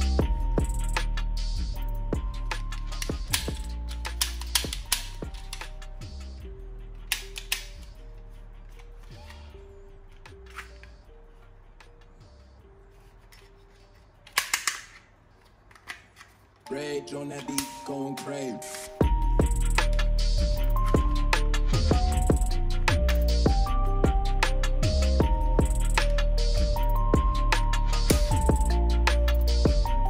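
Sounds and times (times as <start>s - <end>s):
melodic background music: 0.0s - 15.4s, 16.5s - 30.0s
toy pistol clatter: 2.9s - 5.2s, 7.1s - 7.9s, 13.8s - 16.6s
toy pistol plastic clicks: 2.9s - 5.2s, 7.1s - 7.9s, 14.2s - 16.4s.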